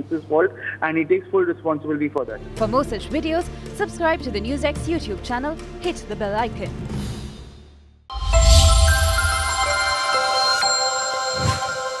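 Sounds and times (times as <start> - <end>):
electronic logo music sting: 8.1 - 12.0.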